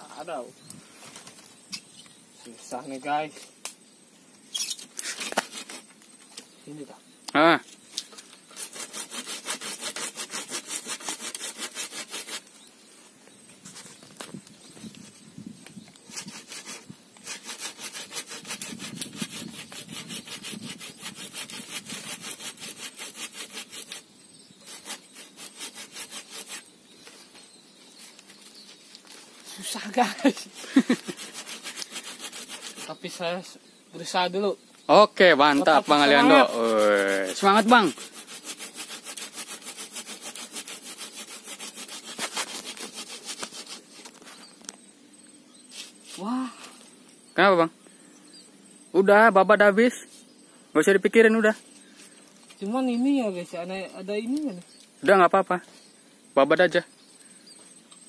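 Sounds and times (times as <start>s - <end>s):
hand saw cutting branch: 4.7s - 5.9s, 8.0s - 12.5s, 16.0s - 24.0s, 24.6s - 26.7s, 29.1s - 33.2s, 35.5s - 44.2s.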